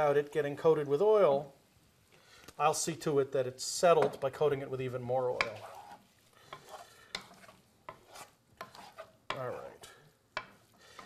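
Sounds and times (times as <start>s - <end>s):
wooden spoon scraping metal pan: 5.2s - 11.0s.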